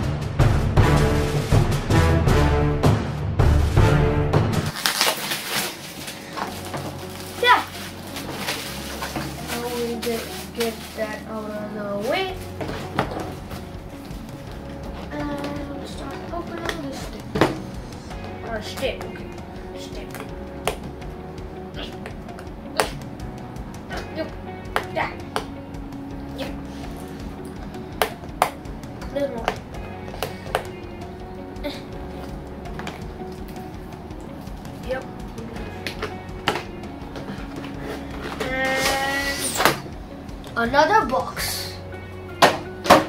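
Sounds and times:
soft background music: 0.0s - 43.0s
plastic wrapping crinkling: 4.7s - 14.2s.

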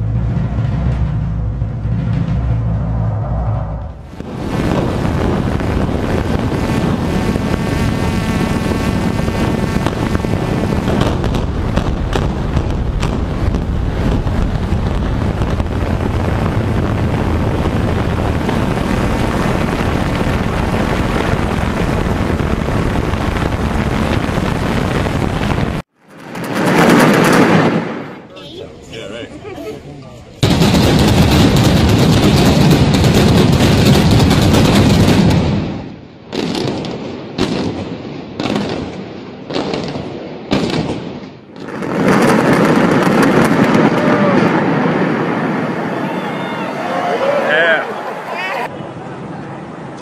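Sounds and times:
building collapse rumble: 0.0s - 28.3s, 30.4s - 36.1s, 41.5s - 50.0s
loud implosion blast: 0.0s - 28.3s, 30.4s - 46.9s
demolition charges crackling: 4.0s - 28.4s.

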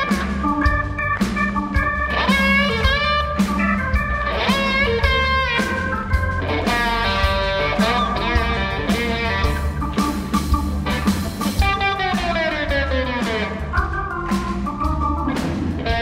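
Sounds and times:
electric guitar solo: 0.0s - 14.6s, 15.2s - 16.0s
bass guitar: 0.0s - 16.0s
drum kit steady beat: 0.0s - 16.0s.

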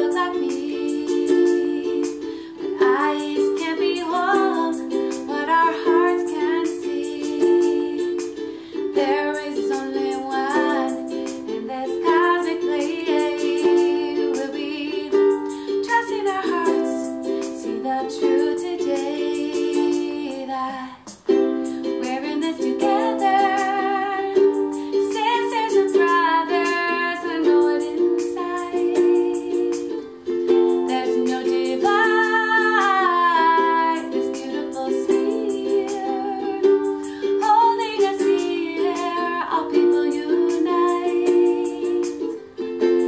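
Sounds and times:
ukulele strumming chords: 0.0s - 43.0s
woman singing: 0.0s - 43.0s.

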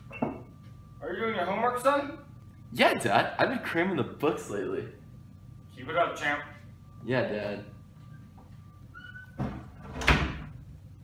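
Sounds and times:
wooden door squeaking and shutting: 9.0s - 10.5s.

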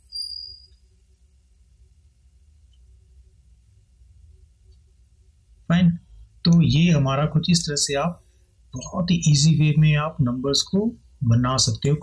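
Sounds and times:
faint low hum: 0.0s - 12.0s
high-pitched tone: 8.8s - 9.6s.

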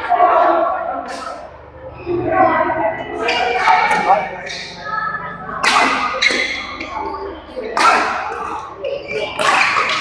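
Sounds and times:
racket hitting shuttlecock: 5.6s - 10.0s.

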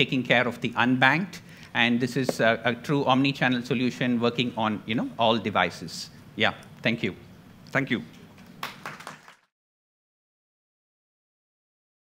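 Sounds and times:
audience applauding: 8.6s - 9.5s.

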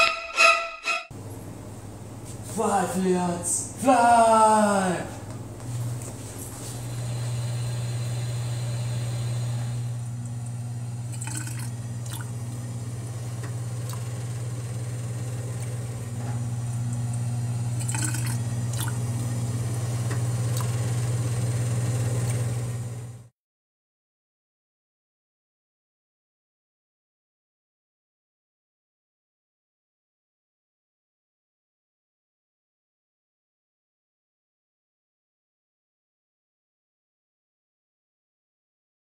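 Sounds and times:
low steady hum: 1.2s - 23.2s
water running down sink drain: 6.1s - 23.2s
sharp water drips: 11.1s - 12.3s, 17.8s - 19.1s.

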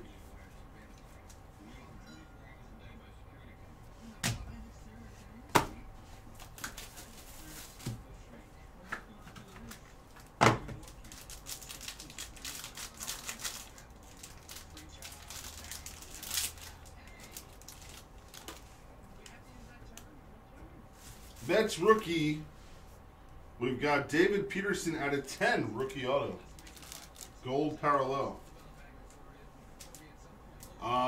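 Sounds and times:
foil wrapper crinkling: 9.6s - 18.8s, 25.9s - 27.5s.

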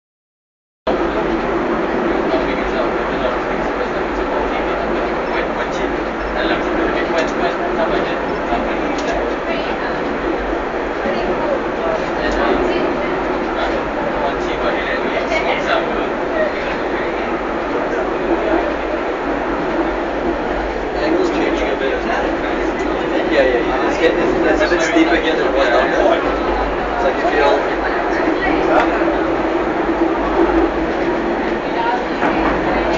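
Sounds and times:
railway car running rumble: 0.9s - 32.9s
voices: 0.9s - 32.9s.

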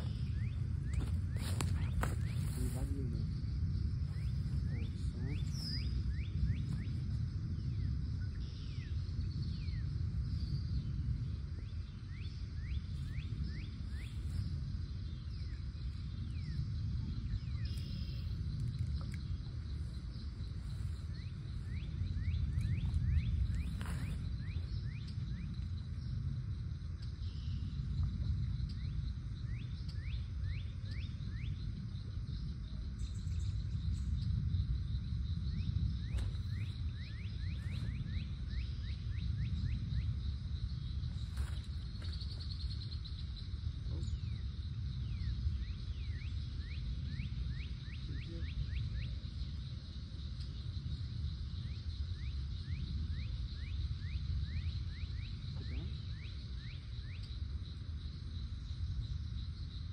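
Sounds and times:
blackbirds chirping: 0.0s - 59.9s
wind rumble on microphone: 0.0s - 59.9s.

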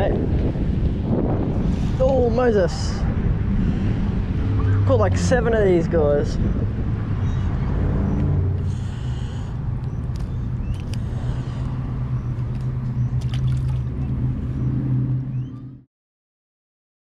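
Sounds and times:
low engine drone: 0.0s - 15.9s
sharp clicks: 9.8s - 11.8s
water splashes: 12.4s - 14.8s.

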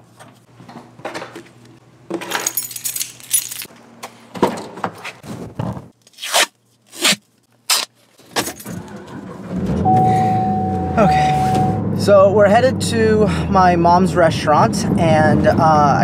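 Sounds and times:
keys jingling: 2.3s - 3.7s
car engine starting and idling: 8.6s - 15.7s
held chime tone: 9.9s - 12.0s.

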